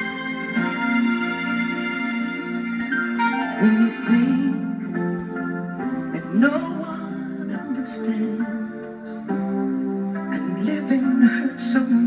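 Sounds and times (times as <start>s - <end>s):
instrumental backing music: 0.0s - 12.0s
woman singing a ballad: 3.6s - 5.2s, 6.1s - 12.0s.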